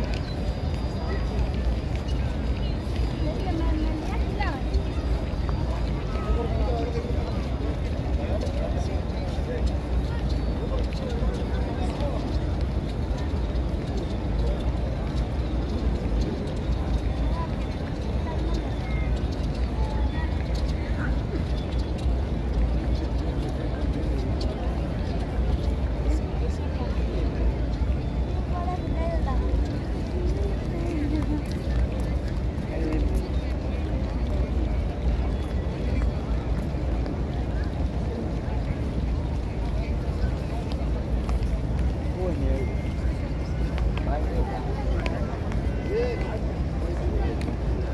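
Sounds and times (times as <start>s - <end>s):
murmur of voices: 0.0s - 47.9s.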